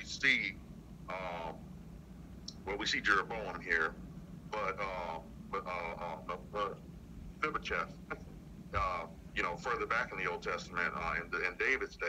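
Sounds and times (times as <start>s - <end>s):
person talking: 0.0s - 1.6s, 2.5s - 6.8s, 7.4s - 12.0s.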